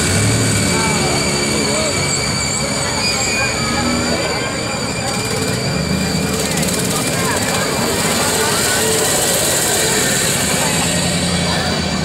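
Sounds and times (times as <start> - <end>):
babble of crowd voices: 0.0 - 12.0.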